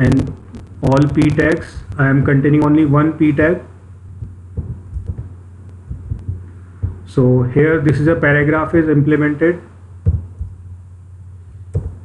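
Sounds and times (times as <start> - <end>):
soft low thumps: 0.0 - 8.6, 9.9 - 12.0
low steady hum: 0.0 - 12.0.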